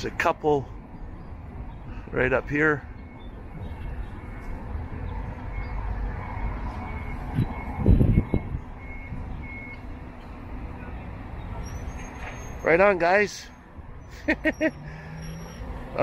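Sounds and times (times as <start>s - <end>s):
street traffic noise: 0.0s - 16.0s
reversing alarm beeping: 2.9s - 10.0s.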